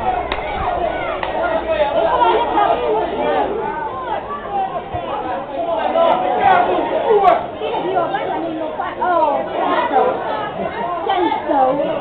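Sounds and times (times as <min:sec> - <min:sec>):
overlapping indistinct chatter: 0:00.0 - 0:12.0.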